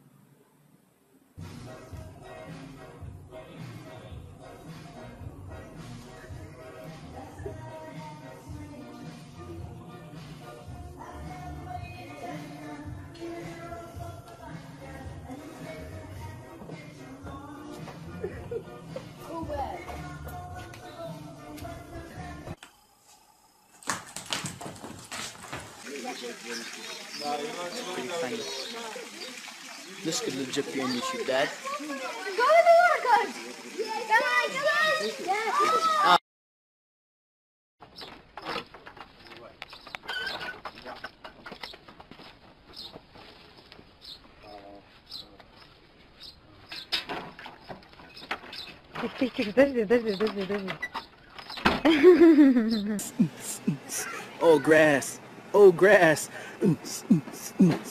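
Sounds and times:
dog paws tapping on wooden floor: 23.8 - 25.8, 37.8 - 44.4
knocks and clatters: 23.8 - 25.8, 37.8 - 43.2, 46.7 - 49.5
person calling out: 52.7 - 57.9.

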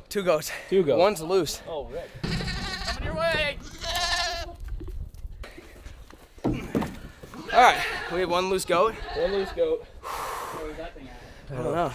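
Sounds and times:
goat bleating: 2.2 - 4.6, 7.4 - 9.7.

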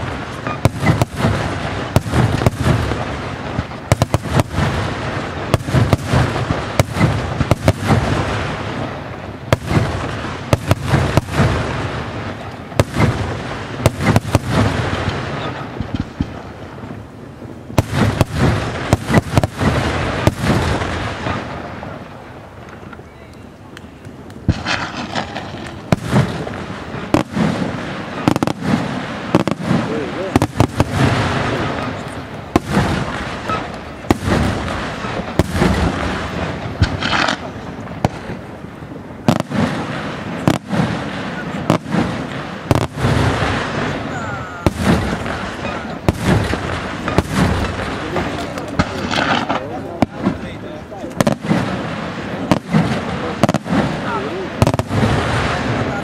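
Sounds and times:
fireworks bursting: 0.0 - 56.0.

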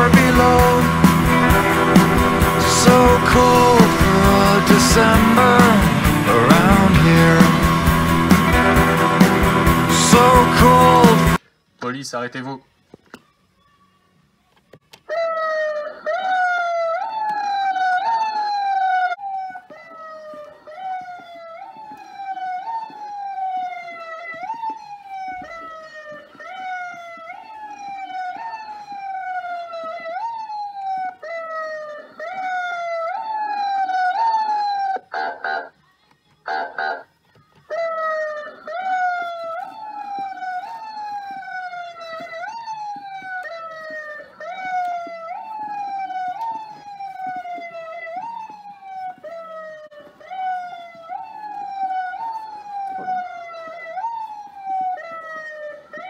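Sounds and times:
toy police siren wailing: 0.0 - 8.3, 14.9 - 35.8, 36.5 - 56.0.

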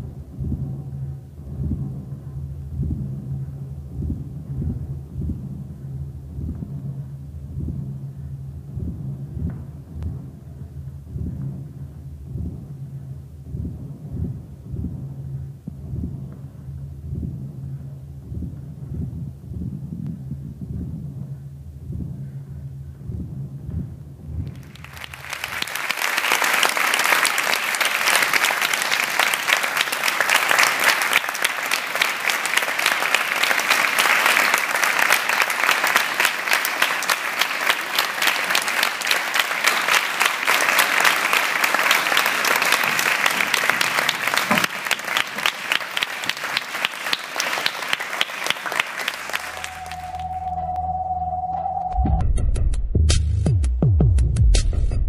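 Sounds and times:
low rumble: 0.0 - 25.8
audience applause: 24.5 - 50.8.

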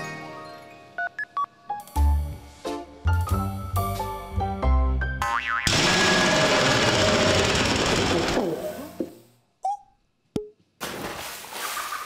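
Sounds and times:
cartoon music with plucked notes: 5.1 - 5.7.

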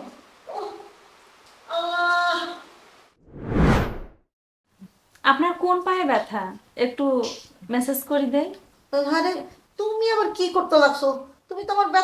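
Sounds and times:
rising whoosh: 3.2 - 4.2.

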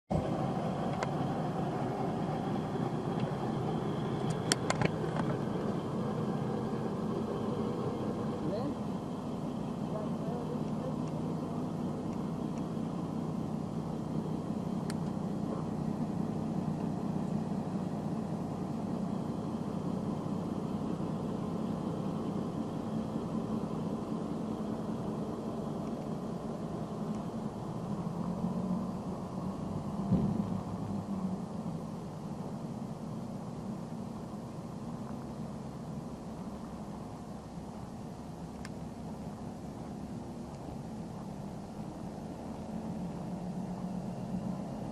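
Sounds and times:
diesel truck engine idling: 0.1 - 44.9.

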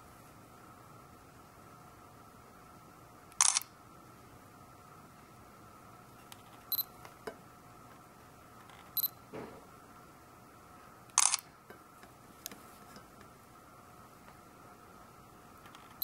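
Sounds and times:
faint steady hum: 0.0 - 16.0
camera focus beep: 3.4 - 3.7, 6.7 - 6.9, 9.0 - 9.2, 11.2 - 11.4
camera shutter click: 3.4 - 3.7, 11.2 - 11.5.

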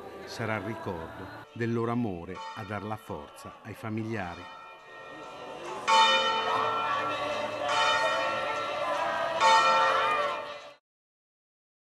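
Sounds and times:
church bell tolling slowly: 1.5 - 10.8.

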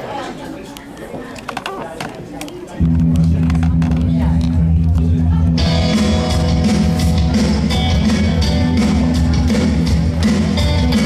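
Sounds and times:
loud steady low note: 2.8 - 9.4
drums: 2.8 - 11.0
guitar: 2.8 - 11.0.

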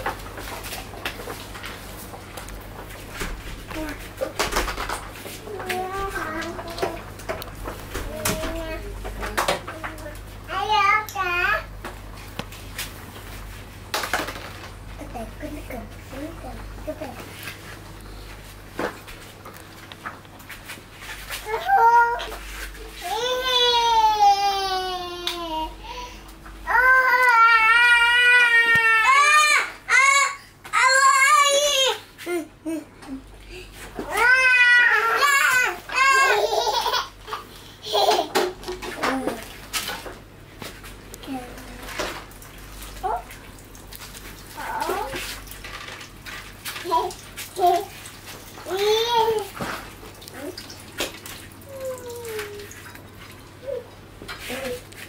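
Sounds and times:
knocks and clatter from play: 0.0 - 10.1
toddler whining cry: 34.0 - 36.6.

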